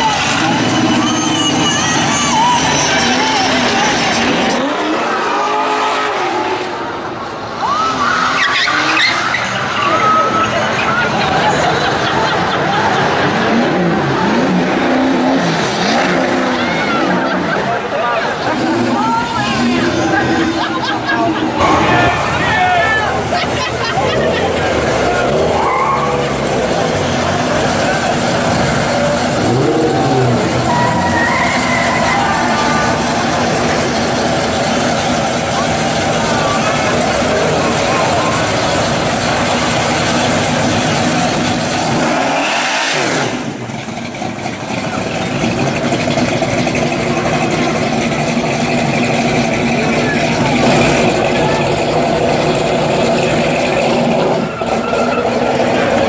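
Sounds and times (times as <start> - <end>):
crowd voices: 0.0 - 56.0
car engine running at low speed: 9.8 - 56.0.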